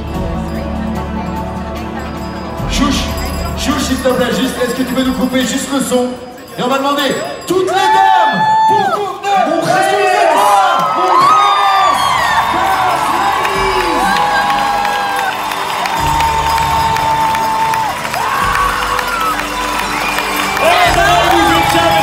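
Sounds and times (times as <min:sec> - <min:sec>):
crowd cheering and whooping: 0:07.7 - 0:22.0.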